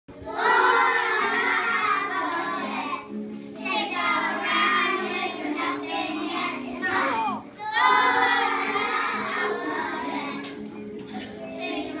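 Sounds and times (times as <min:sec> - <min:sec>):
children singing: 0:00.1 - 0:12.0.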